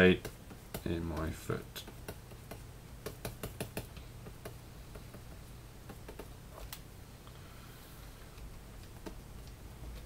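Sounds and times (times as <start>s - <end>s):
low steady hum: 0.0s - 10.0s
computer clicks and taps: 0.2s - 6.8s.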